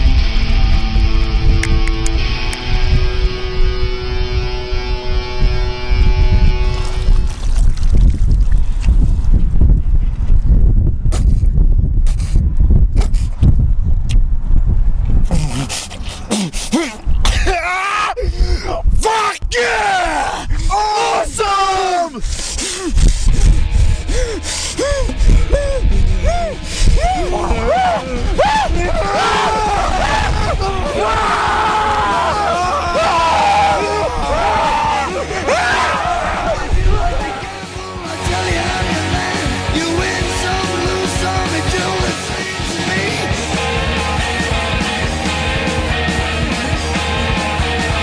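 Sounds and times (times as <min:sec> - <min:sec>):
music with long held chords: 0:00.0 - 0:07.8, 0:23.3 - 0:48.0
low wind rumble: 0:00.0 - 0:47.3
liquid splashing: 0:06.8 - 0:08.8
men gasping cries: 0:15.3 - 0:18.8, 0:20.2 - 0:21.3, 0:22.0 - 0:38.2.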